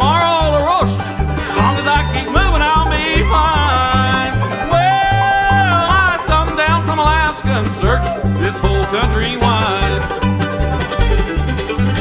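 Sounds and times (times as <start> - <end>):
person singing: 0.0 - 10.2
acoustic guitar: 0.0 - 12.0
banjo: 0.0 - 12.0
fiddle: 0.0 - 12.0
mandolin: 0.0 - 12.0
upright bass plucking: 0.0 - 12.0.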